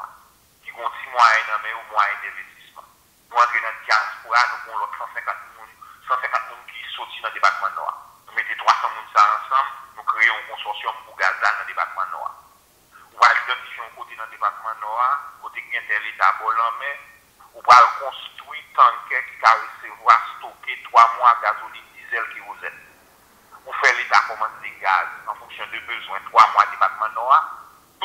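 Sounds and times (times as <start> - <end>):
person talking through phone speaker: 0.0 - 12.4, 13.0 - 22.9, 23.5 - 27.7.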